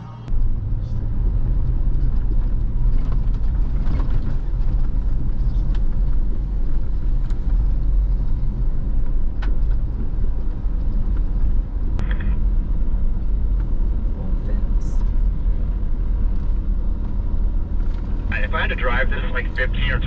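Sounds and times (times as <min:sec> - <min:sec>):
vehicle engine and tyre rumble: 0:00.2 - 0:20.0.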